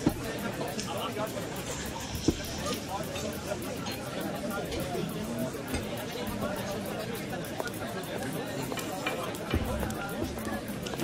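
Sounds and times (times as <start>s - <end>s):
babble of voices: 0.0s - 11.0s.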